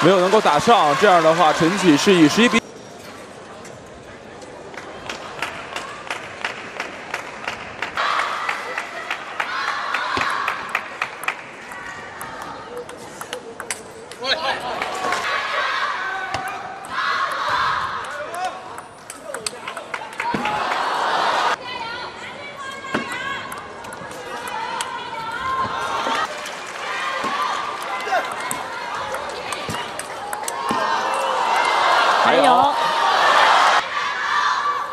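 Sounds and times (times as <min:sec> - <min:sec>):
crowd cheering and shouting: 0:00.0 - 0:02.6, 0:08.0 - 0:10.7, 0:14.3 - 0:18.6, 0:20.1 - 0:34.9
table tennis ball clicking: 0:18.0 - 0:20.0.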